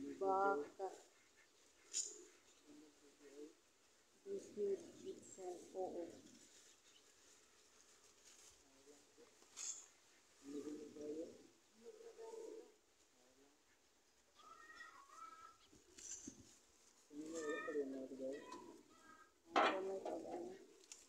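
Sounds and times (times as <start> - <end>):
birds chirping: 0.0 - 7.2.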